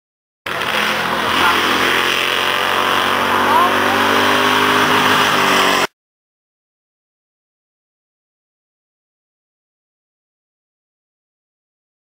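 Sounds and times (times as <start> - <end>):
race car engine passing: 0.5 - 5.9.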